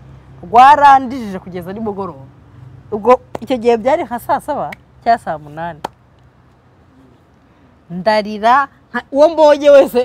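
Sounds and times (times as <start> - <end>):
woman talking: 2.9 - 5.9, 7.9 - 10.0.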